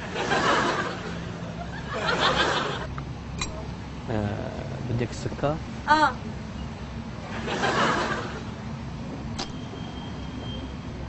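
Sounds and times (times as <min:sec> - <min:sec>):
background rumble and hiss: 0:00.0 - 0:11.0
sharp click: 0:09.4 - 0:09.6.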